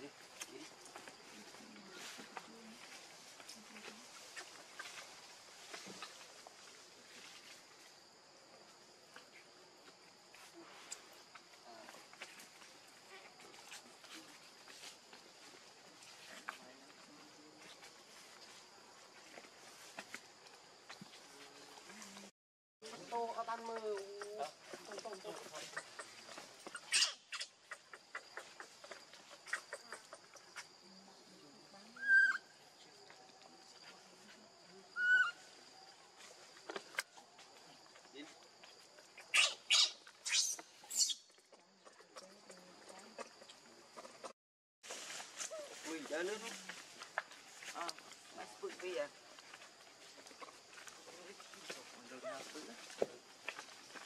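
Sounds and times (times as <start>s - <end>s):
baby monkey squeak: 26.7s - 27.5s, 32.0s - 32.4s, 35.0s - 35.4s, 39.3s - 41.3s.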